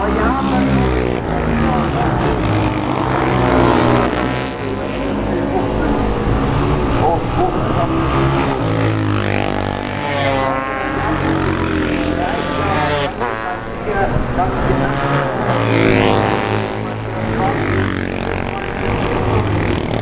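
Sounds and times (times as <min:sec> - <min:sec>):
racing motorcycle engines revving: 0:00.0 - 0:20.0.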